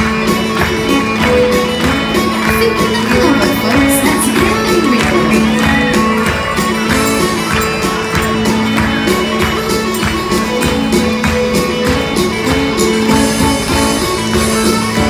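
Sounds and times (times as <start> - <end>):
bagpipes playing melody: 0.0 - 15.0
live band with guitar and bass: 0.0 - 15.0.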